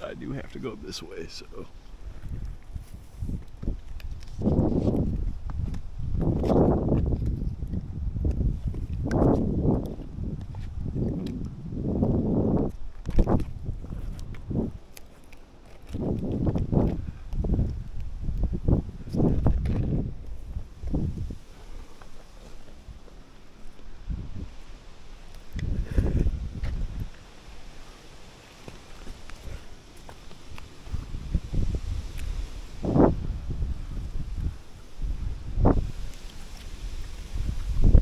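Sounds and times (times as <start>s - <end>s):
hard breathing: 25.6s - 26.8s, 29.1s - 31.1s.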